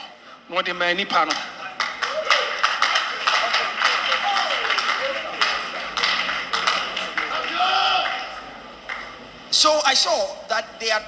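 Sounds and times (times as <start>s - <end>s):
hand claps: 1.2s - 9.2s.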